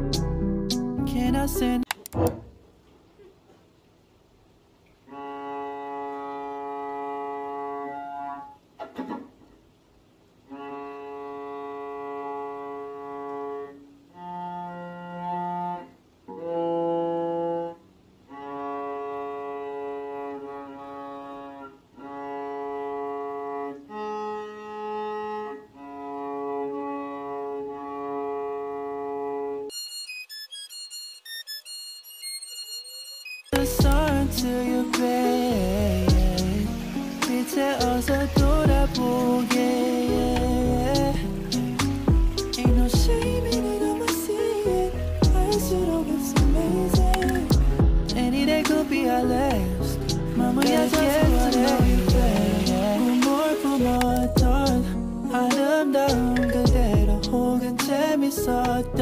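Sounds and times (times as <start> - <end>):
cello bowed long notes: 5.1 - 8.5, 10.4 - 29.7, 33.8 - 54.2
high-pitched quick melody: 29.7 - 57.7
scratchy bow noise: 30.2 - 54.8.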